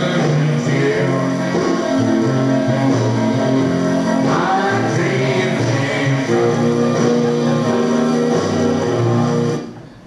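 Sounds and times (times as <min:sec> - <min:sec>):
instrumental accompaniment: 0:00.0 - 0:10.0
choir singing: 0:04.2 - 0:06.2.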